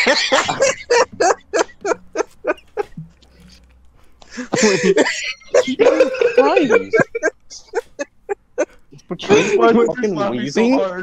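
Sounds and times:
person wheezing laughter: 0.0s - 2.9s, 4.3s - 9.6s.

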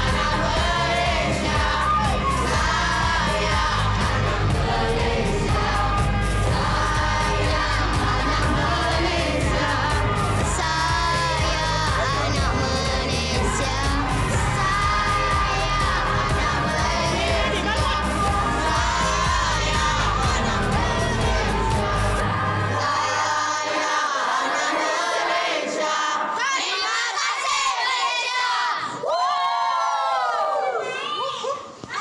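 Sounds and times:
recorded pop song: 0.0s - 26.6s
children singing and shouting: 0.0s - 32.0s.

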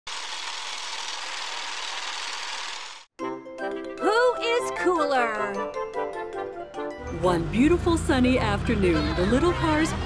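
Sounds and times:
film projector whirring: 0.1s - 3.1s.

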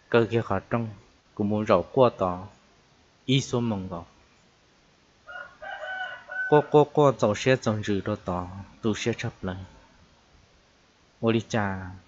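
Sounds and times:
man speaking: 0.0s - 2.6s, 3.3s - 4.1s, 6.5s - 9.8s, 11.2s - 12.0s
drawn-out pitched call: 5.3s - 6.9s.

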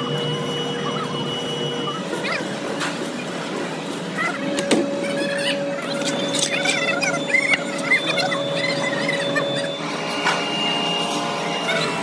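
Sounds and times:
mixer motor whine: 0.0s - 12.0s.

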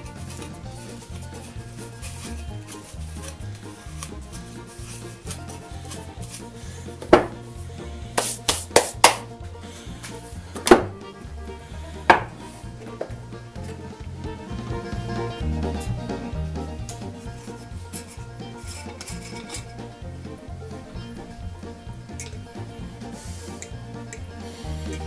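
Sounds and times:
background music with bass line: 0.0s - 25.0s
pipes knocking on workbench: 7.0s - 9.4s, 10.0s - 11.1s, 12.0s - 13.8s.

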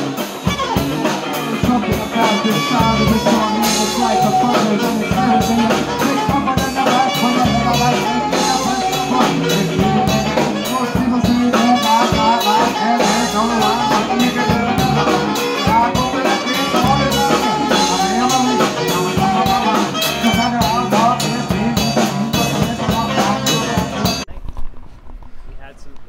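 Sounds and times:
saxophone melody: 0.0s - 24.2s
drum kit with cymbal hits: 0.0s - 24.3s
bass: 0.0s - 26.0s.

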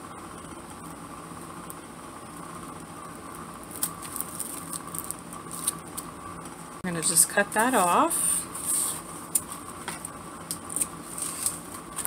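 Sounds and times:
steady low hum: 0.0s - 12.0s
paper rustling: 11.0s - 12.0s.

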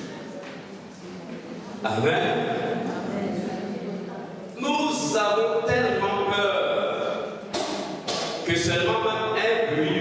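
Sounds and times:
man speaking over loudspeakers: 1.8s - 2.9s, 4.5s - 7.4s, 8.2s - 10.0s.

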